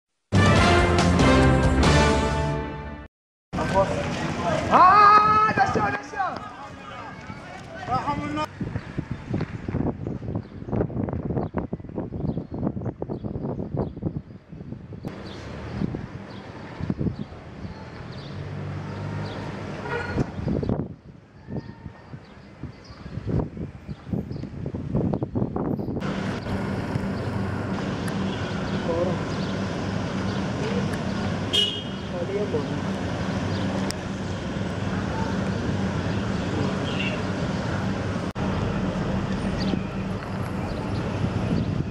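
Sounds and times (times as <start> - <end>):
low engine hum: 26.0 - 41.9
vehicle engine: 26.0 - 41.9.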